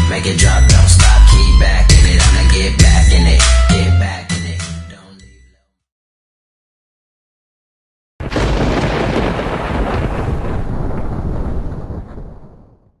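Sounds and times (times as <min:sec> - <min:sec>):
loud rumbling boom: 0:08.2 - 0:13.0.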